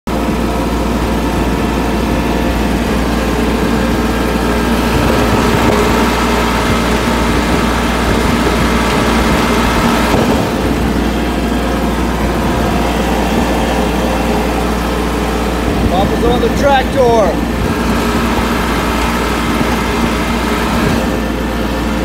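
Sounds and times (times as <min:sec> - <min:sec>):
tractor engine droning: 0:00.1 - 0:22.0
man's voice: 0:15.9 - 0:17.4.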